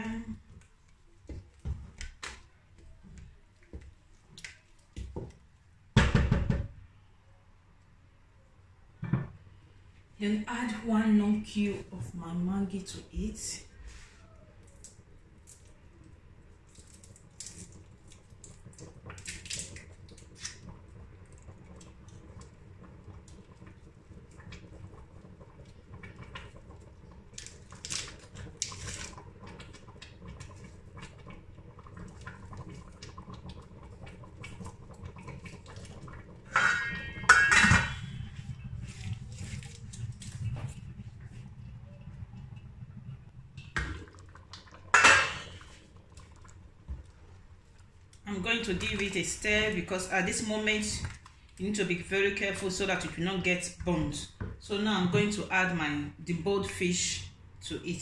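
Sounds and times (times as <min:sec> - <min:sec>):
low steady hum: 0:06.8 - 0:58.0
clatter of knocks on a pot: 0:36.5 - 0:38.0, 0:44.9 - 0:45.5.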